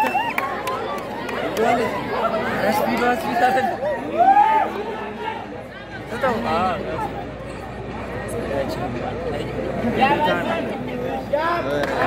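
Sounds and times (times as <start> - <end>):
spectators talking and calling out: 0.0 - 12.0.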